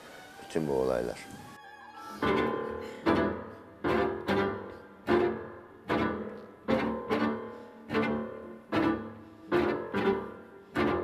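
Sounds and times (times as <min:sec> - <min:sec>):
bowed and plucked strings: 0:01.4 - 0:11.0.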